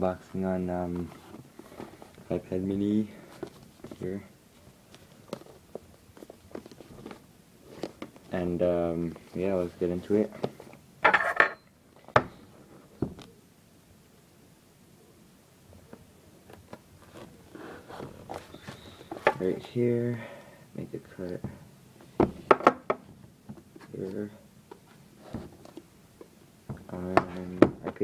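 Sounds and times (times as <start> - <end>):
box rustling: 0.7 - 10.8, 16.4 - 19.8.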